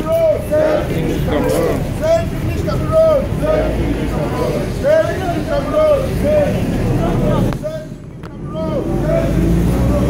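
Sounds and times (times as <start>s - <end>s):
protesters talking and calling out: 0.0s - 10.0s.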